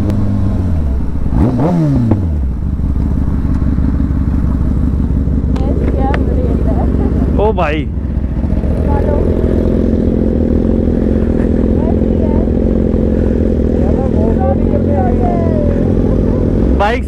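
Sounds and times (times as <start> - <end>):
motorcycle engines idling: 0.0 - 17.0.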